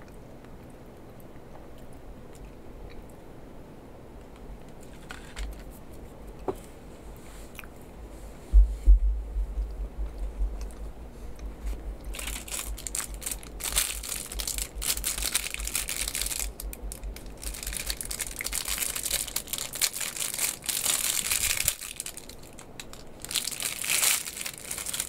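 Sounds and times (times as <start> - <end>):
plastic wrapper crinkling: 12.0 - 25.0.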